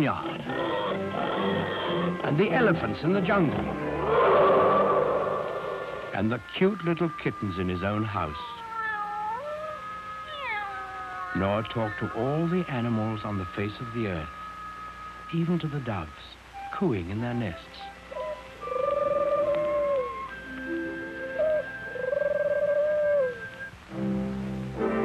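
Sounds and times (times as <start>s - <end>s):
background music note: 1.9s - 6.6s, 12.2s - 25.0s
cartoon dove cooing: 4.7s - 8.3s, 18.1s - 20.3s, 20.9s - 23.5s
cartoon kittens meowing: 6.2s - 12.2s.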